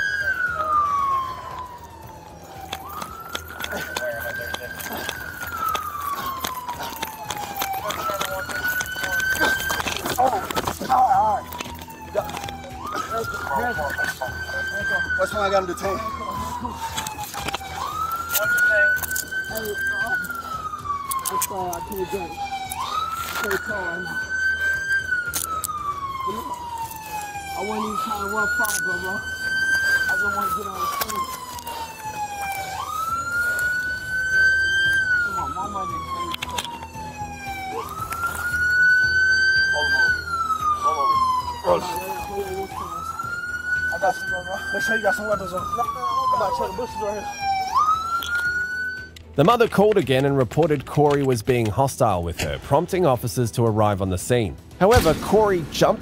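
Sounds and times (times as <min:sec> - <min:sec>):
police siren wailing: 0:00.0 - 0:52.3, 0:54.6 - 0:56.0.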